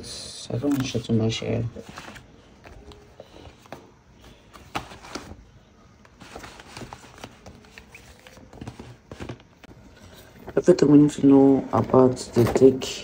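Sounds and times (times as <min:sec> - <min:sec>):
paper rustling: 0:00.6 - 0:09.7.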